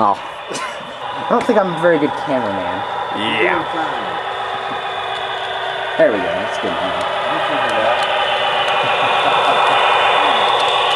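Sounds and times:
model train running past: 0:00.0 - 0:10.9.

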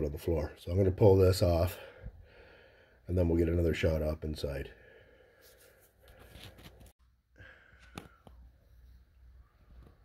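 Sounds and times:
faint handling rustles: 0:05.4 - 0:07.0.

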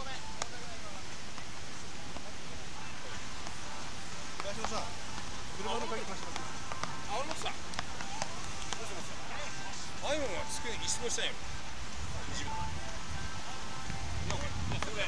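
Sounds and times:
wind hiss: 0:08.4 - 0:15.0.

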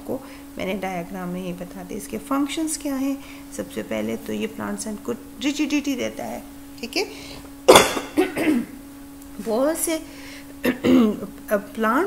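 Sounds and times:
woman coughing: 0:07.7 - 0:08.8, 0:10.6 - 0:11.3.

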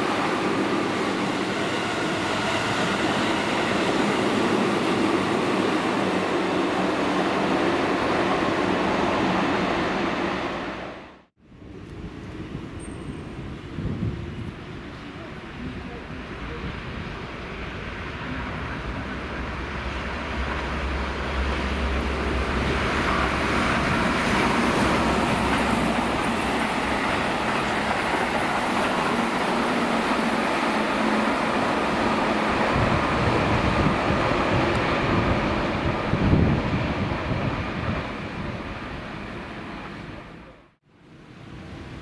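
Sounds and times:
electric train passing: 0:00.0 - 0:42.0.

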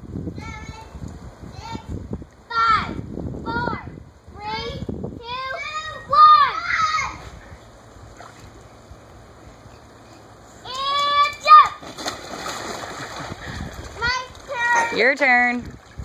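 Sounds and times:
child shouting: 0:02.5 - 0:07.2, 0:10.7 - 0:11.8
water sloshing: 0:08.0 - 0:09.4, 0:10.7 - 0:16.0
splash into pool: 0:08.1 - 0:08.6, 0:10.7 - 0:15.0.

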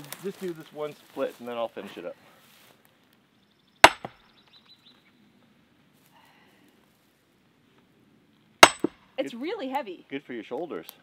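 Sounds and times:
maul striking steel wedge: 0:03.8 - 0:04.2, 0:08.6 - 0:09.0.

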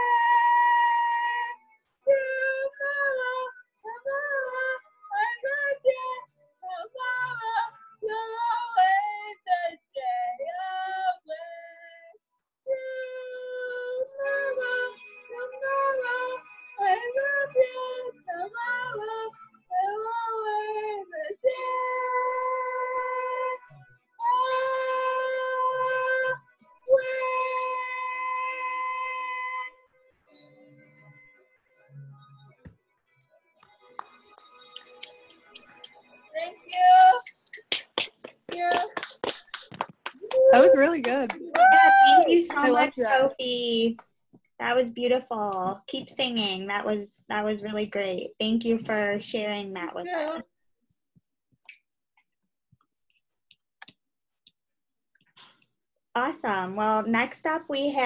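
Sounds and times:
woman singing high notes: 0:24.2 - 0:29.7, 0:36.4 - 0:37.6, 0:40.3 - 0:43.4.

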